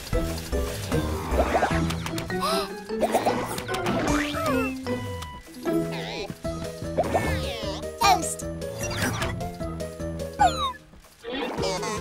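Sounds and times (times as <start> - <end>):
children's cartoon music: 0.0 - 12.0.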